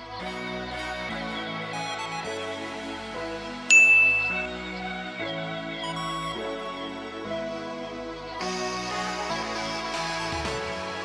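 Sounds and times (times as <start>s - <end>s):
soft instrumental music: 0.0s - 11.0s
bright bell ding: 3.7s - 4.6s.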